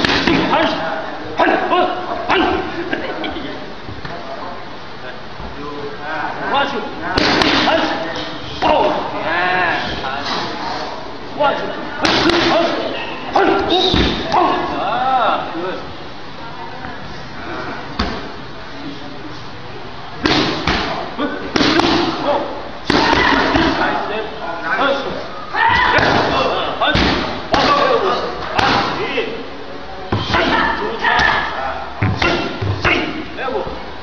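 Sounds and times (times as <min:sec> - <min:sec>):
strikes smacking pads: 0:00.0 - 0:00.5, 0:07.2 - 0:07.8, 0:12.0 - 0:12.6, 0:20.2 - 0:22.2, 0:22.9 - 0:23.8, 0:26.9 - 0:29.0
kicks slapping on pads: 0:20.2 - 0:21.0, 0:21.6 - 0:22.2, 0:27.0 - 0:27.9
person shouting: 0:22.9 - 0:23.9.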